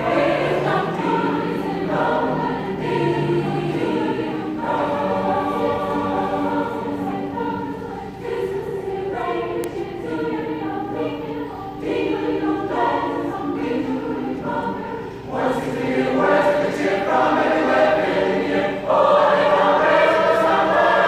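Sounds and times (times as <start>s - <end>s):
choir singing sustained chords: 0.0s - 21.0s.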